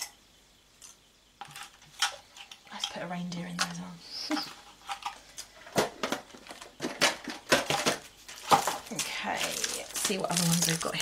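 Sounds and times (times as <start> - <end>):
packaging rustle: 4.3 - 11.0.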